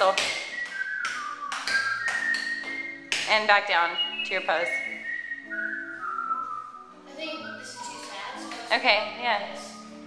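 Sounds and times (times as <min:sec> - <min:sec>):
whistled tune: 0:00.0 - 0:08.8, 0:09.4 - 0:10.0
soft music: 0:00.0 - 0:10.0.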